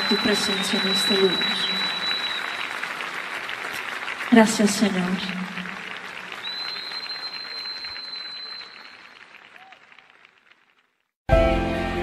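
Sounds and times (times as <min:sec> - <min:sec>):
high steady whistle: 0:00.0 - 0:02.7, 0:06.4 - 0:09.1
audience applauding: 0:00.0 - 0:11.1.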